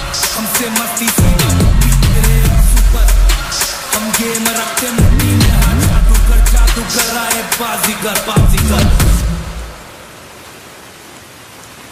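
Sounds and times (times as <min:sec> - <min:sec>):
rain hiss: 0:00.0 - 0:11.9
low bass note: 0:05.0 - 0:06.4.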